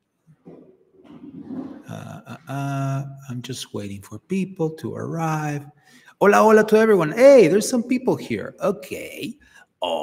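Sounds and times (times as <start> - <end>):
man's rough throaty vocal noise: 1.4 - 3.0.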